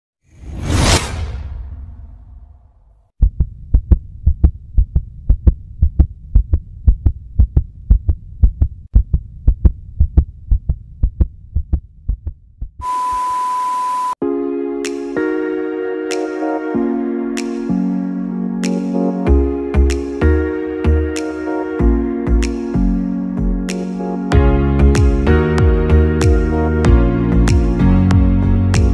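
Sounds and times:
whoosh: 0.2 - 3.1
heartbeat-style thumping: 3.2 - 12.8, 24.4 - 28.9
steady electronic beep: 12.8 - 14.2.

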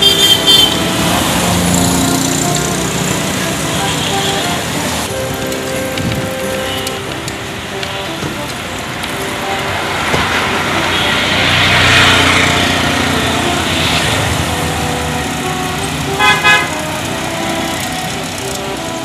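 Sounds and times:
car horn toots: 0.0 - 19.0
street traffic: 0.0 - 19.0
vehicle passing close: 0.0 - 19.0.

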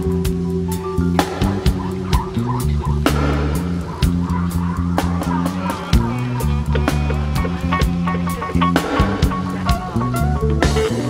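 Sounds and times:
deep bass line: 0.0 - 11.0
drums with steady hi-hat: 0.0 - 11.0
reggae band playing instrumental: 0.0 - 11.0.

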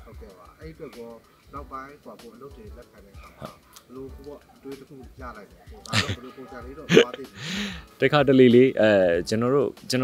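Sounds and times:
man laughing: 5.9 - 6.3, 6.9 - 7.7.

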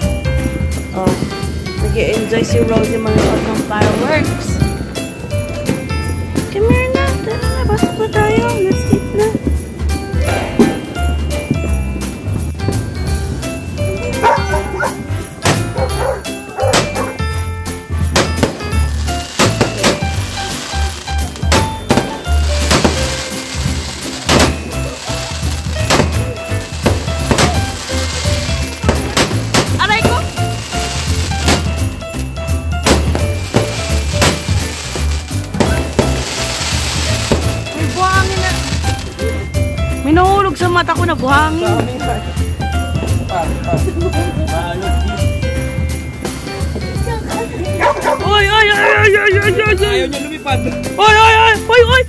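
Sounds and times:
fireworks bangs and crackles: 0.0 - 50.6
music with heavy bass beat: 9.9 - 50.0.

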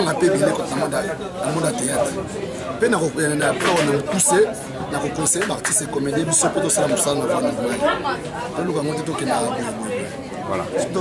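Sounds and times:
overlapping chatter of voices: 0.0 - 11.0.

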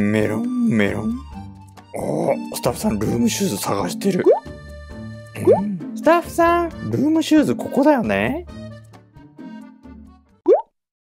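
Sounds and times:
faint background music: 0.0 - 8.8.

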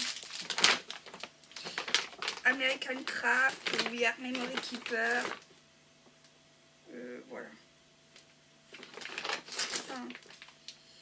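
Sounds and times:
packaging rustling and crackling: 0.0 - 5.5, 8.2 - 10.8.

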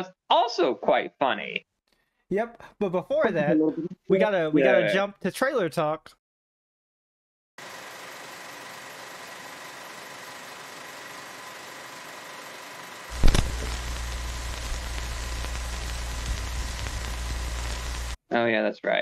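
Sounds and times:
film crackle and hiss: 7.8 - 18.2
loud low hum: 13.1 - 18.2
sudden thump: 13.2 - 13.7.

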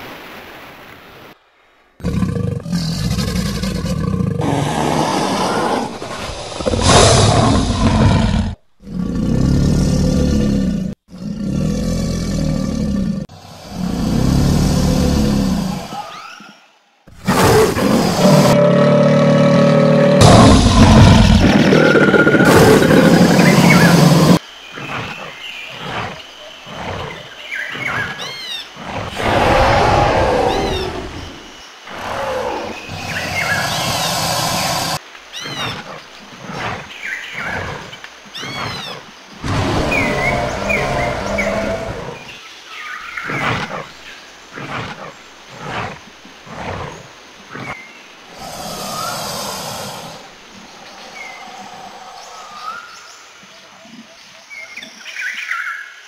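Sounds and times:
broken growls: 2.0 - 16.0, 17.2 - 24.4, 39.4 - 42.3
loud creature roars: 2.0 - 16.0, 17.2 - 24.4, 28.9 - 35.0, 39.4 - 42.3, 48.3 - 52.8.

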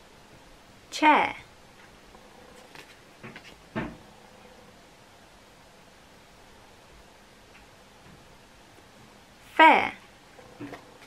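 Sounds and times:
cardboard card handling: 2.6 - 3.6.

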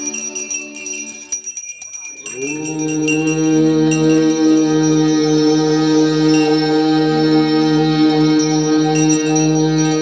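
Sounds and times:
hand bells ringing rapidly: 0.0 - 10.0
conch shell blown: 2.6 - 10.0.

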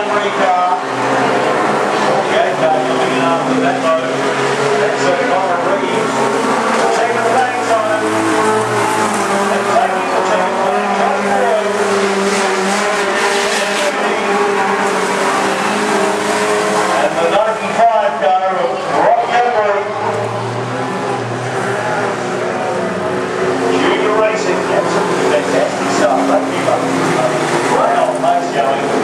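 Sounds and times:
race car engines revving: 0.0 - 29.0.

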